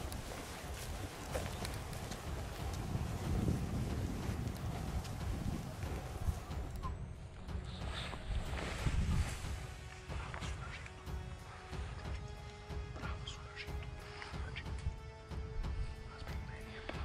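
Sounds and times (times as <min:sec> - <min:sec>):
wind on microphone: 0:00.0 - 0:07.2, 0:07.8 - 0:09.8
footsteps in boots on soil: 0:00.0 - 0:15.0.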